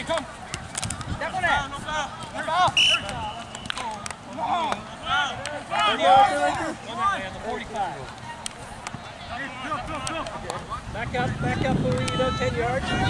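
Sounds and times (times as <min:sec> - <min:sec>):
people calling and shouting: 0:00.0 - 0:13.0.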